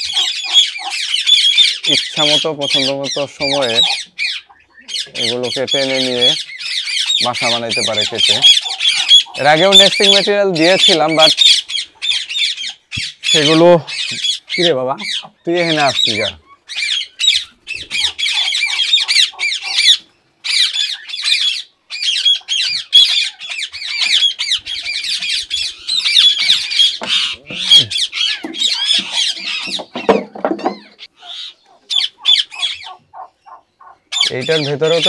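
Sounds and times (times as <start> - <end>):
parakeets squawking: 0.0 - 35.0.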